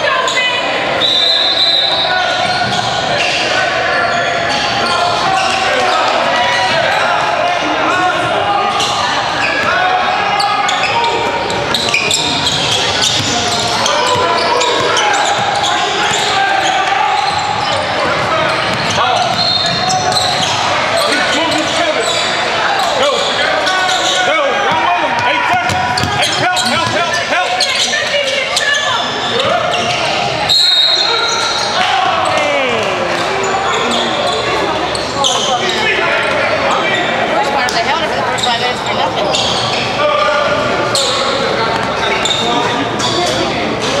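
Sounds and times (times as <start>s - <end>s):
voices of players and spectators: 0.0s - 44.0s
referee's whistle: 0.9s - 3.4s, 19.2s - 20.5s, 28.6s - 31.8s.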